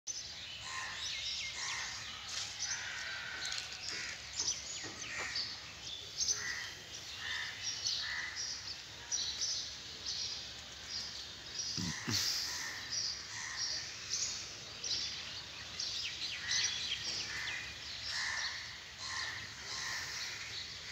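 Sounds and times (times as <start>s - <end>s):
birds calling and chirping: 0.1s - 20.9s
low outdoor background noise: 0.1s - 20.9s.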